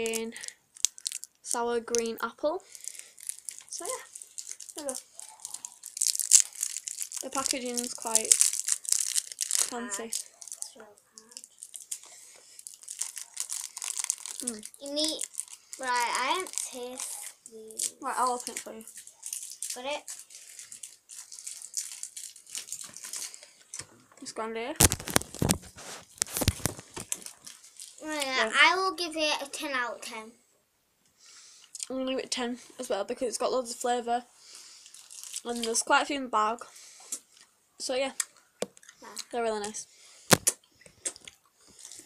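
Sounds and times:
plastic candy wrapper crinkling: 0:00.0 - 0:23.8, 0:24.8 - 0:28.6, 0:34.5 - 0:35.9, 0:38.2 - 0:42.0.

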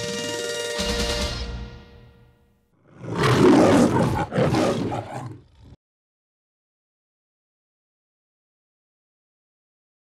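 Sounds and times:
loud roar: 0:02.8 - 0:05.8.

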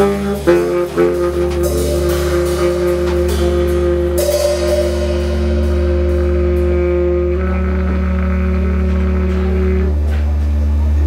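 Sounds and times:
baritone saxophone: 0:00.0 - 0:11.0
deep steady drone: 0:00.0 - 0:11.0
double bass: 0:00.0 - 0:11.0
drums: 0:00.0 - 0:11.0.

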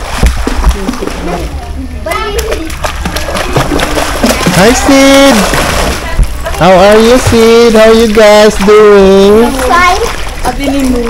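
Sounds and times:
water splashing in pool: 0:00.0 - 0:11.0.

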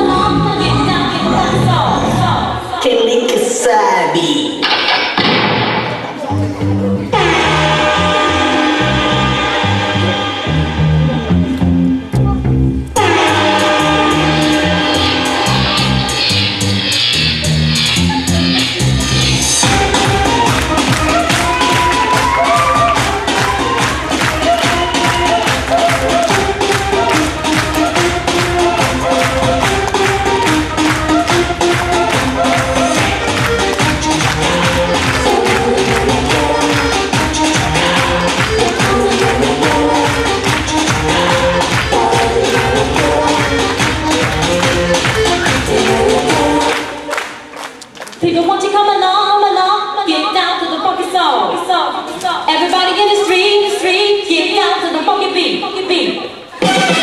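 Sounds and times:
pop dance music with vocals: 0:00.0 - 0:05.4, 0:13.0 - 0:47.4, 0:48.2 - 0:57.0.

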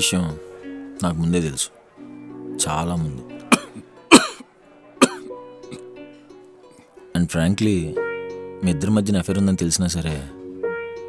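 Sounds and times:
soft guitar music: 0:00.0 - 0:11.0
man coughing: 0:03.5 - 0:04.4, 0:05.0 - 0:05.2.

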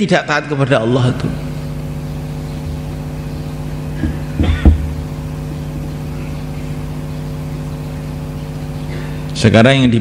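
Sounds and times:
steady tonal hum: 0:00.0 - 0:10.0.

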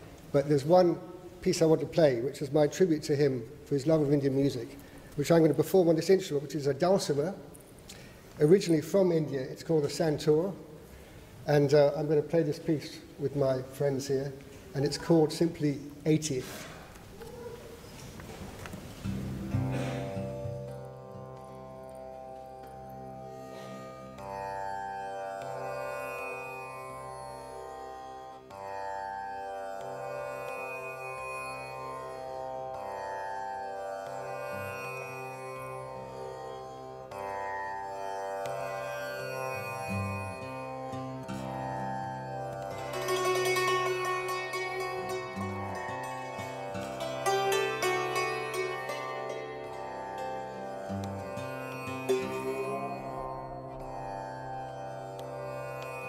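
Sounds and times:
hammered santoor melody: 0:19.4 - 0:56.0
steady low drone: 0:39.9 - 0:55.8.

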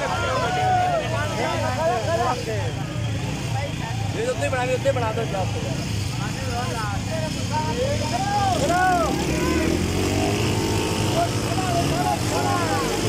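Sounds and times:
crowd shouting and whooping: 0:00.0 - 0:02.4, 0:07.9 - 0:13.0
motorcycle engines rumbling: 0:00.0 - 0:13.0.

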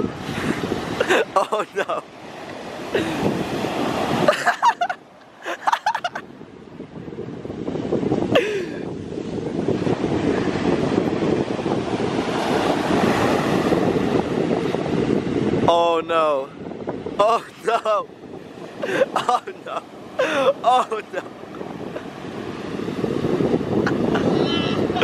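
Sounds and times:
ocean surf breaking: 0:00.0 - 0:25.0
wind buffeting microphone: 0:00.0 - 0:25.0.

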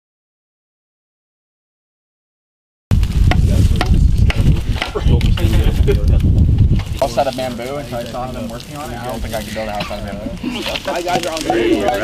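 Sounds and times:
low crackling rumble: 0:02.9 - 0:12.0.

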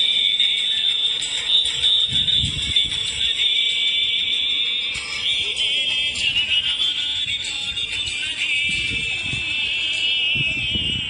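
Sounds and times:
dance music: 0:00.0 - 0:11.0
shrill high-pitched tone: 0:00.0 - 0:11.0.

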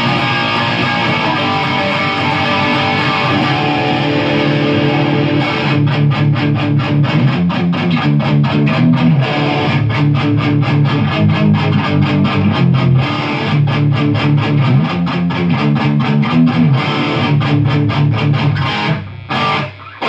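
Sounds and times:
electric guitar chords: 0:00.0 - 0:20.0.

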